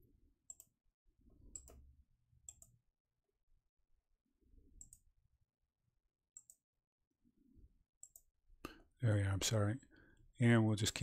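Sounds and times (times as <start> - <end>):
faint computer mouse clicks: 1.5 - 1.8, 2.5 - 2.8, 6.4 - 6.6, 8.0 - 8.8.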